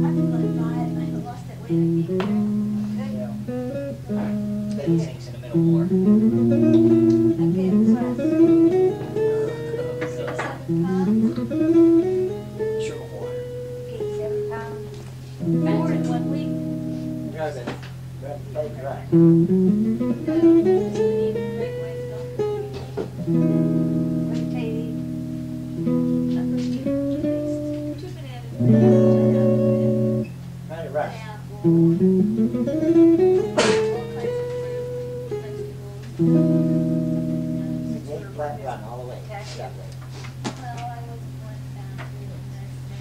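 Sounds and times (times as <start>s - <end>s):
guitar playing: 0.0s - 43.0s
steady low hum: 0.0s - 43.0s.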